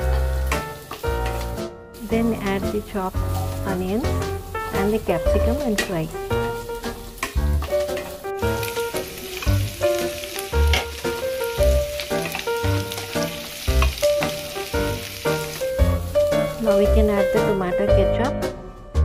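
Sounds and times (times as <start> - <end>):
wooden spatula stirring in pan: 0.0 - 17.5
vegetables sizzling in hot oil: 0.0 - 17.9
background music with steady beat: 15.6 - 19.0.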